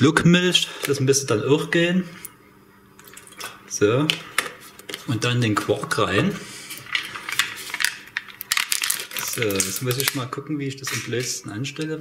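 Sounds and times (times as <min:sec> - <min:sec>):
plastic tub crinkling: 0:06.9 - 0:11.4.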